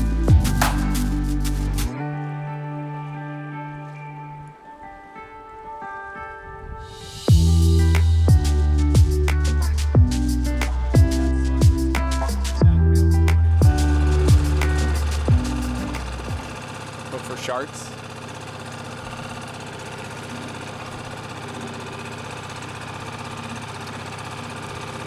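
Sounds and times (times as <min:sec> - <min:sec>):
music with heavy beat: 0:00.0 - 0:01.9, 0:07.2 - 0:16.5
small outboard motor running: 0:07.2 - 0:25.0.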